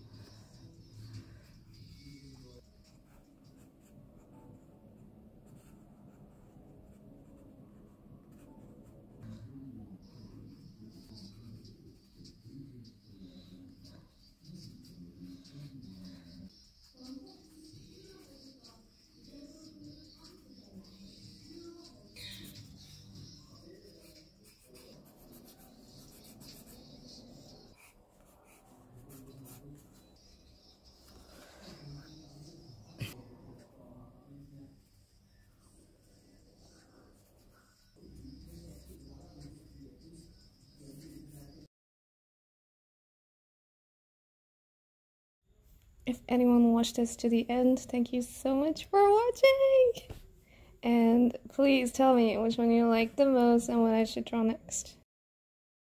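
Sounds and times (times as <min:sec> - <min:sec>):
pencil scratching on paper: 0:00.1 - 0:09.4, 0:10.0 - 0:33.8, 0:34.8 - 0:41.6.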